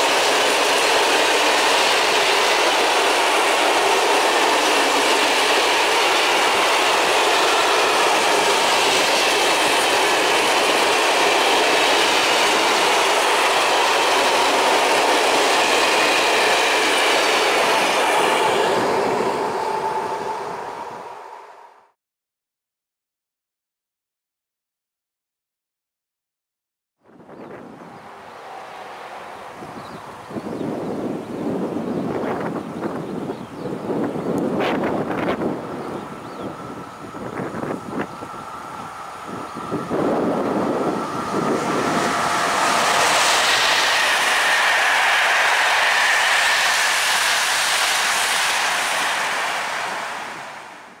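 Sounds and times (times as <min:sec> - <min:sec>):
wind gusting on microphone: 0:00.0 - 0:21.7, 0:27.1 - 0:51.0
electric train passing at speed: 0:00.0 - 0:22.0, 0:27.1 - 0:51.0.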